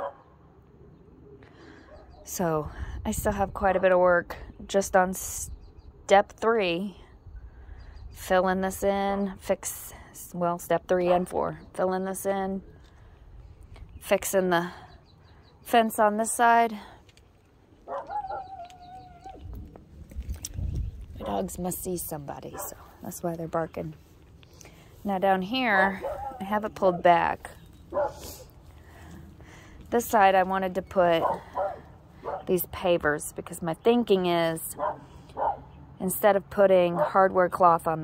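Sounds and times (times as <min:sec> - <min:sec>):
dog bark: 0:00.0 - 0:00.2, 0:17.9 - 0:18.6, 0:26.0 - 0:26.4, 0:27.9 - 0:28.2, 0:31.2 - 0:32.5, 0:34.8 - 0:35.7
dog howling: 0:17.9 - 0:19.4.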